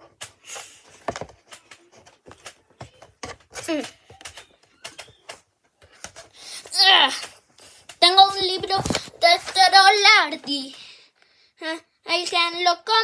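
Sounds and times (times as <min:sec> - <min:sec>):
clicks and knocks of handling: 0:00.0 - 0:09.8.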